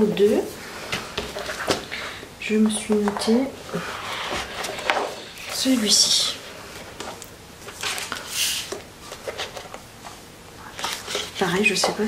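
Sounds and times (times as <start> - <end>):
paper rustling: 2.8 - 12.0.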